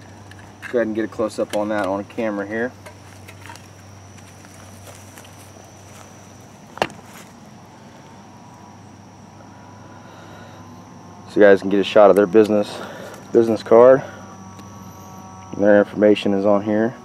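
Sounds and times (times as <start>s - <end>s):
thin steady high tone: 0.0s - 17.0s.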